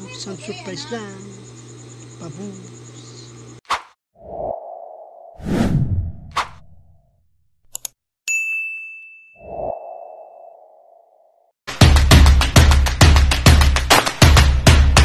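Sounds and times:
whooshes: 4.2s - 7.0s
sharp click: 7.7s - 8.0s
notification bell ding: 8.3s - 9.4s.

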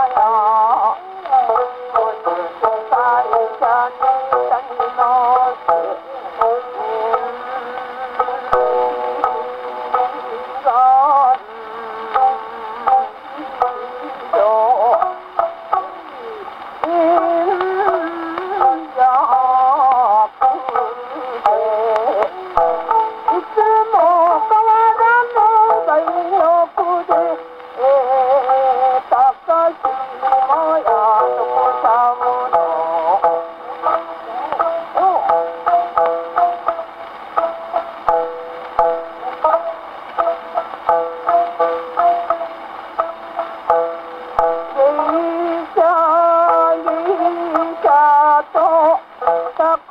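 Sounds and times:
woman singing: 0.0s - 36.8s, 43.7s - 49.9s
record surface hiss: 0.0s - 49.9s
shamisen plucks: 0.0s - 49.9s.

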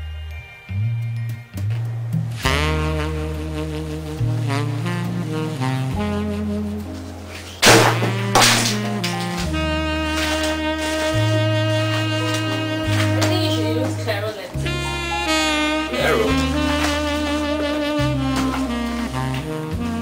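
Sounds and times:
background music: 0.0s - 20.0s
loud sharp hits: 7.6s - 8.9s.

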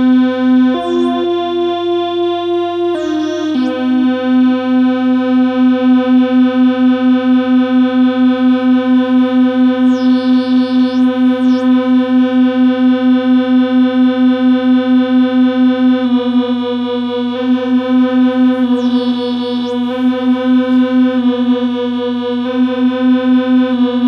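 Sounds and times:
pulsing low synthesizer drone: 0.0s - 24.0s
high synth sweep gliding: 0.6s - 5.0s, 9.4s - 12.1s, 18.1s - 21.4s.

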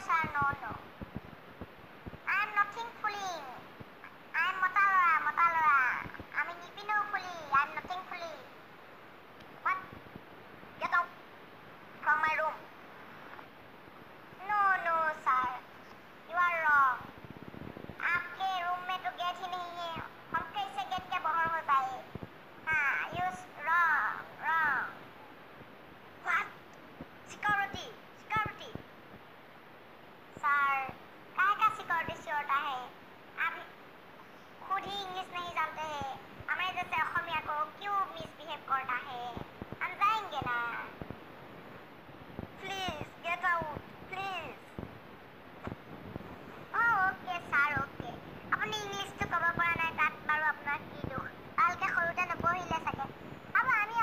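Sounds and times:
faint hiss: 0.0s - 54.0s.

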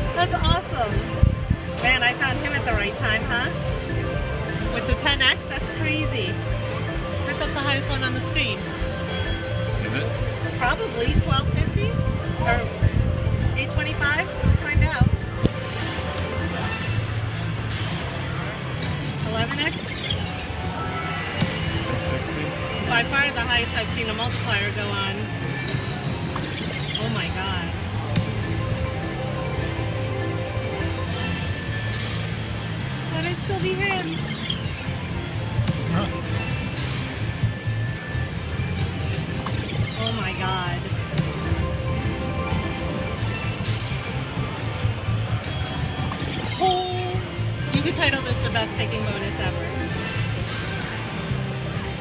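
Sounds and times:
electronic sound effects: 0.0s - 18.6s, 19.3s - 25.0s, 28.0s - 37.7s
slot machine music: 0.0s - 52.0s.

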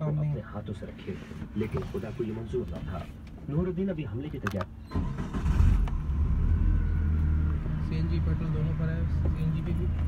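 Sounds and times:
car engine starting and idling: 4.3s - 10.0s.

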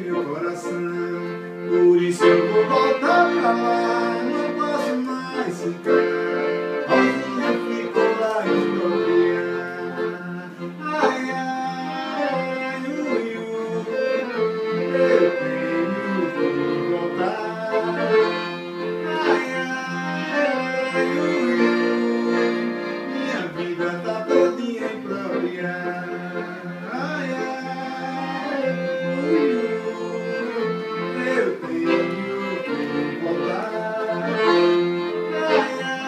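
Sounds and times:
piano accordion melody: 0.0s - 36.0s.

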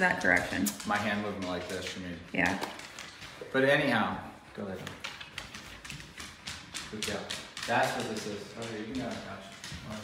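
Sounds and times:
dog claws clicking on wood floor: 0.0s - 10.0s.

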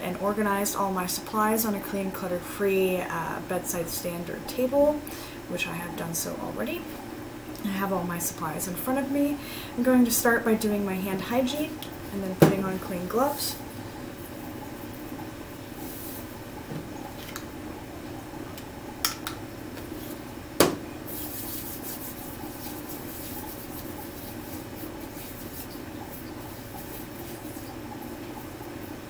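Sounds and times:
hands rubbing together: 21.1s - 27.8s.

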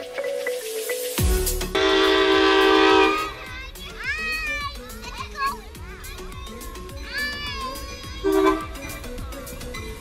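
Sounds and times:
background music: 0.0s - 10.0s
children calling out: 3.0s - 10.0s.

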